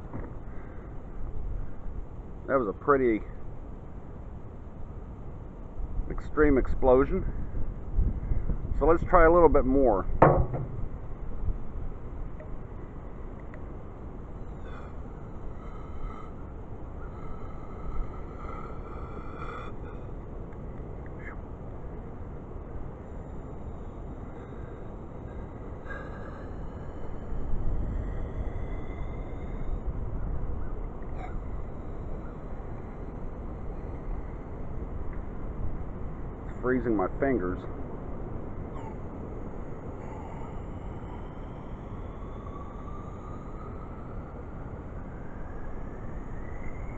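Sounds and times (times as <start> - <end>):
wind rumble on microphone: 0.0 - 46.9.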